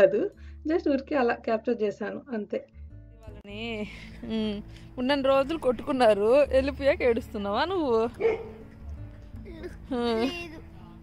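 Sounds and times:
girl crying: 9.4s - 10.7s.

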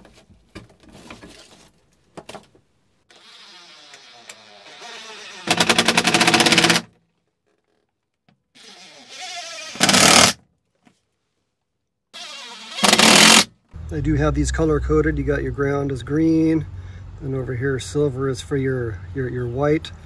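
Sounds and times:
impact driver driving screws: 3.1s - 6.9s, 8.6s - 10.4s, 12.2s - 13.5s.

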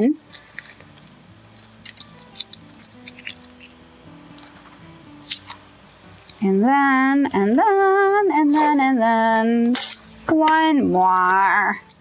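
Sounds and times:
tape crinkling: 0.2s - 6.4s, 8.4s - 12.0s
tape peeling: 0.2s - 6.4s, 8.4s - 10.4s, 11.0s - 12.0s.

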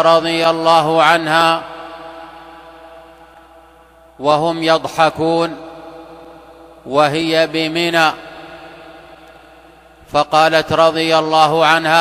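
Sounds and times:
man's voice reverberation: 0.0s - 12.0s.

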